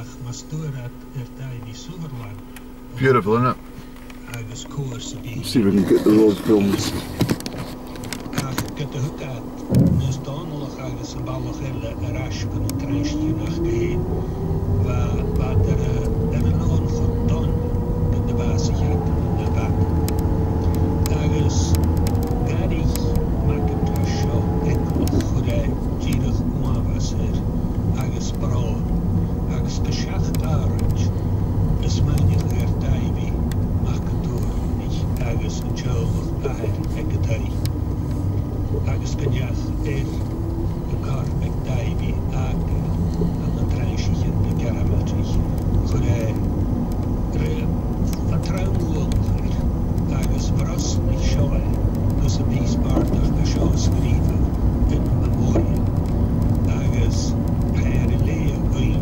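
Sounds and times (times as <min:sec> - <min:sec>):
car engine: 0:00.0 - 0:59.0
tyre noise on rough road: 0:05.6 - 0:09.0, 0:14.8 - 0:59.0.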